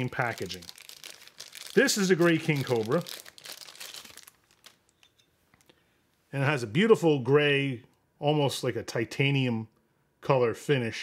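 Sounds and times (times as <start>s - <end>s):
plastic sleeve crinkling: 0.0s - 5.7s.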